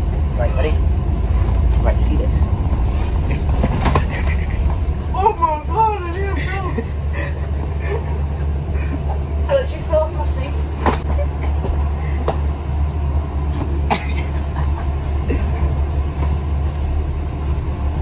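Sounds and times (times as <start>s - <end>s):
bus engine low rumble: 0.0s - 18.0s.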